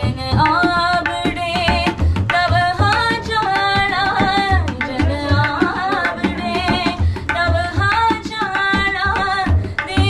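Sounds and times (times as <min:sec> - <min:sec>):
tabla drumming: 0:00.0 - 0:10.0
woman singing: 0:00.0 - 0:10.0.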